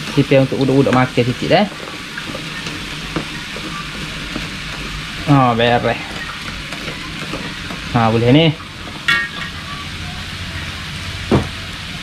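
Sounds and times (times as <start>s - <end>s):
food sizzling in a wok: 0.0s - 12.0s.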